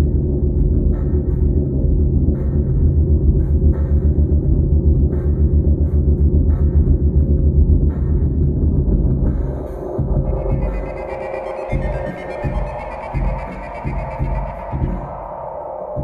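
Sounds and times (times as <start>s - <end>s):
bass-heavy music: 0.0s - 16.0s.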